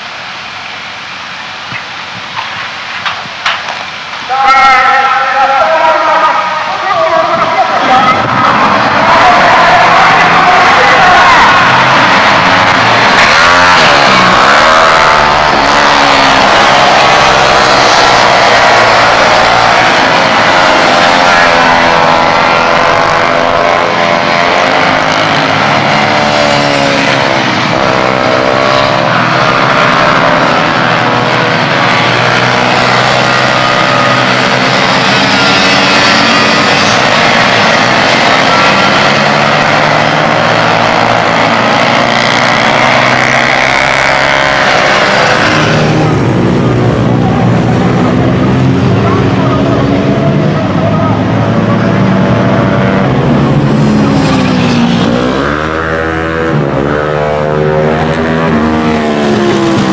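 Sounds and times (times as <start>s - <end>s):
minibike engines revving past: 3.8s - 59.9s.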